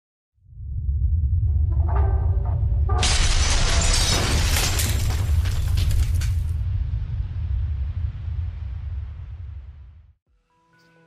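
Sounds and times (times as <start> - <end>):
deep bass music: 0.5 - 3.3
wall crashing apart: 3.0 - 6.6.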